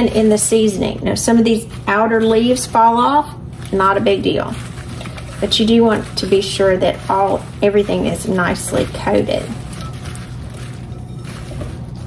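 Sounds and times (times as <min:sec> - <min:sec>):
steady low hum: 0:00.0 - 0:12.0
wet rustling and squishing in bowl: 0:00.0 - 0:12.0.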